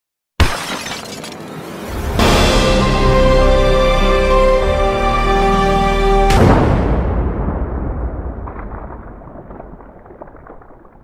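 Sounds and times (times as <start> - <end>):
shattering crash: 0.4 - 1.9.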